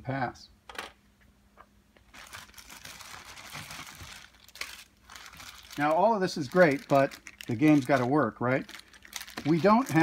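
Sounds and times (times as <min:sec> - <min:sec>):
plastic packaging crinkling: 0:02.0 - 0:10.0.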